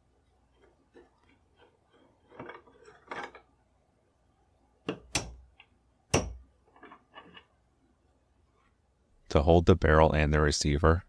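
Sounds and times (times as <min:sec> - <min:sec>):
metal parts scraping and clinking: 0:00.6 - 0:03.5.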